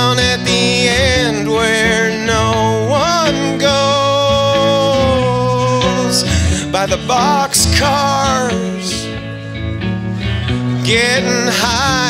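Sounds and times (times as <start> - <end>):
strummed electric guitar chords: 0.0 - 12.0.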